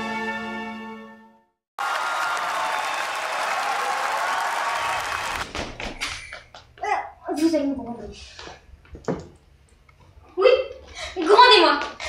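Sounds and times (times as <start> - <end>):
audience applause: 1.8 - 5.6.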